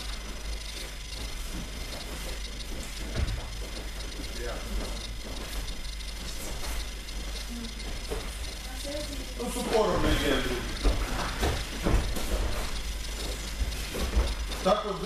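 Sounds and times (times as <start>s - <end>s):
room noise: 0.0s - 15.0s.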